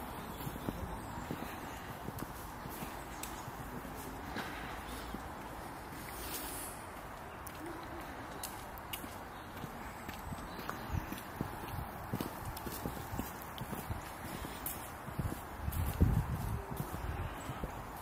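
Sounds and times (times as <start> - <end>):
footsteps on stone path: 0.0 - 18.0
steady outdoor hiss: 0.0 - 18.0.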